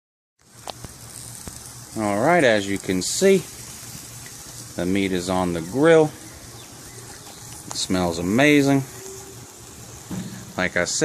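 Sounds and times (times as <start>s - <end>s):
food sizzling on a grill: 0.4s - 11.0s.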